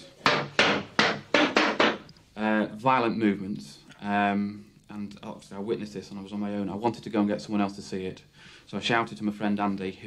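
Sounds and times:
chair legs knocking on tiled floor: 0.2 - 2.1.

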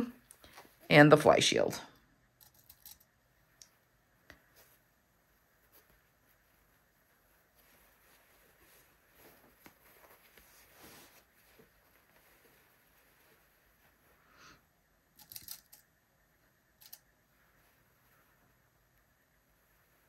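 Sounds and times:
fabric rustling: 2.2 - 20.0
pins clicking through fabric: 2.4 - 3.1, 15.2 - 15.9, 16.8 - 17.1.

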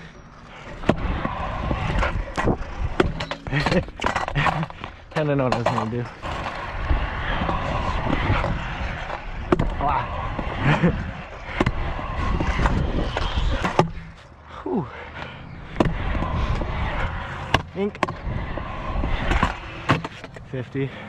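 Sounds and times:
scooter wheels rolling on concrete: 0.0 - 21.0.

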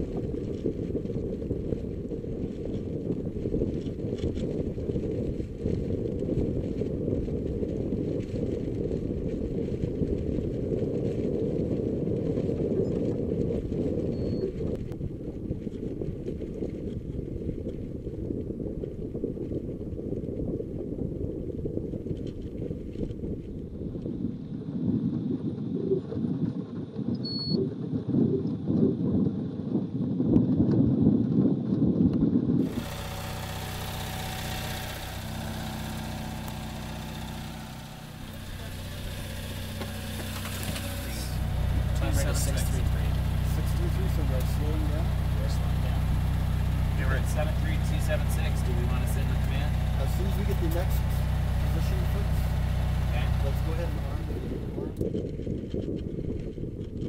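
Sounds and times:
wind buffeting microphone: 0.0 - 57.0
steady hum and hiss: 32.6 - 55.0.

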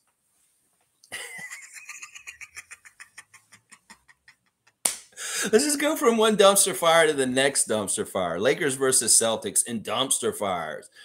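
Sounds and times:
man laughing: 1.1 - 4.8.

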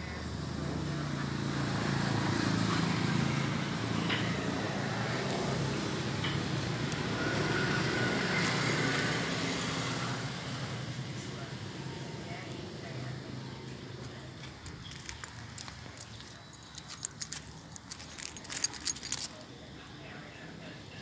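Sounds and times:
vehicle engine humming: 0.0 - 19.5
background noise: 0.0 - 21.0.

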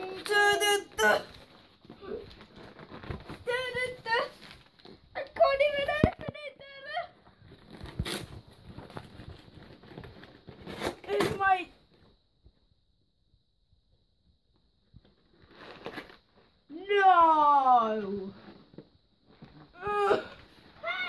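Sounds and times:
cardboard box being torn open: 7.7 - 8.4, 10.2 - 11.4.

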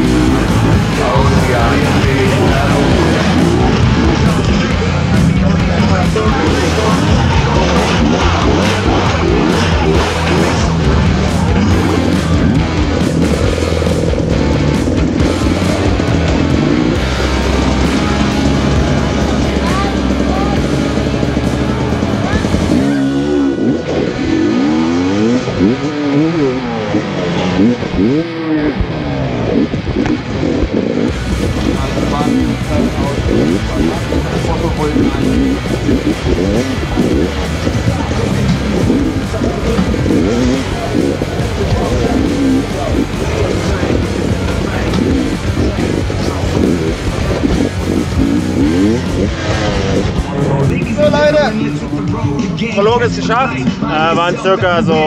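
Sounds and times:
background music: 0.0 - 55.0
dirt bike engine revving: 0.0 - 55.0.

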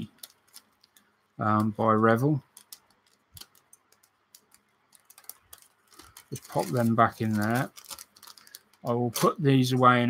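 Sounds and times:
plastic parts clicking: 0.0 - 1.1, 2.4 - 9.3.

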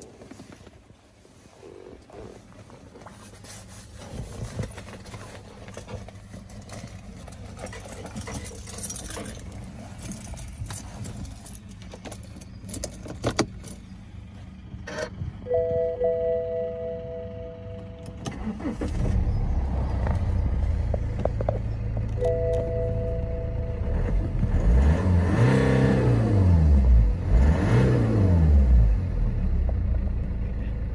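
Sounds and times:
diesel engine starting and idling: 2.1 - 30.9
two-tone dashboard warning chime: 15.4 - 18.0, 22.2 - 23.8
engine revving: 18.2 - 21.1, 23.5 - 29.7.

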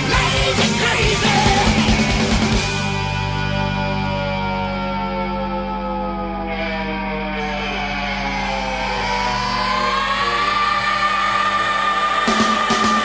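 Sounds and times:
rock music: 0.0 - 5.8, 6.4 - 13.0.

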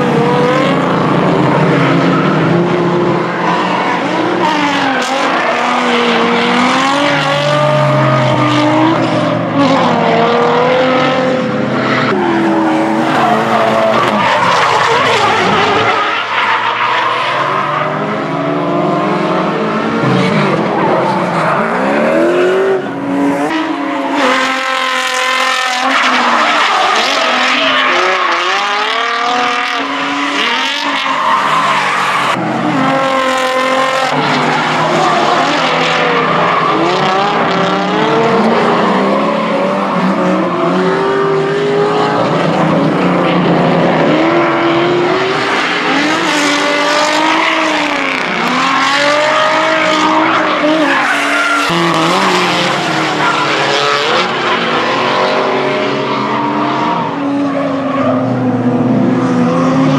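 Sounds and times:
car engines revving hard: 0.0 - 59.9.

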